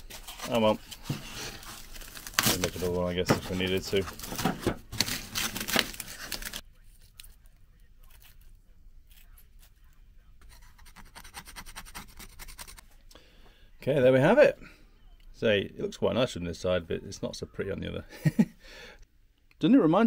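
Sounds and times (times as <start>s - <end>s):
plastic film crinkling and tearing: 0.0s - 10.0s.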